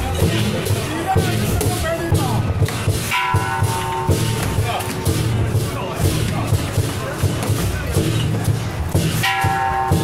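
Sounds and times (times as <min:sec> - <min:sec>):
drum beating steady rhythm: 0:00.0 - 0:10.0
cymbal clashes: 0:02.6 - 0:06.9, 0:08.0 - 0:10.0.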